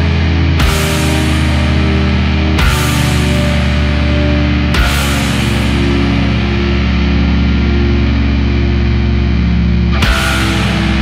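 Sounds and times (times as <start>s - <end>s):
distorted guitar chord ringing: 0.0s - 11.0s.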